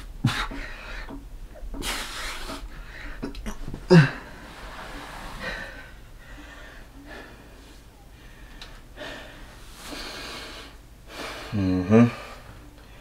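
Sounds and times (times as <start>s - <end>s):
man breathing hard: 0.2s - 1.2s, 1.8s - 13.0s.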